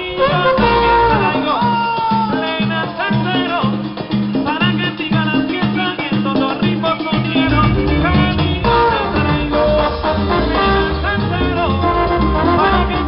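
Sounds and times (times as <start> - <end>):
hand drums playing rhythm: 0.3 - 13.0
melodic instrumental line: 7.2 - 11.8.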